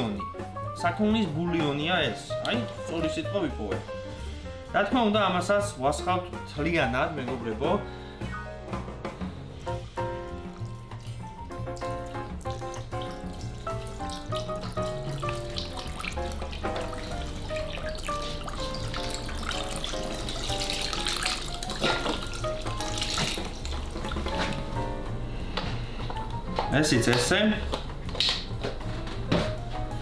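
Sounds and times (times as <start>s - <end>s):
background music with melody: 0.0s - 30.0s
liquid splashing into a pot: 10.3s - 24.6s.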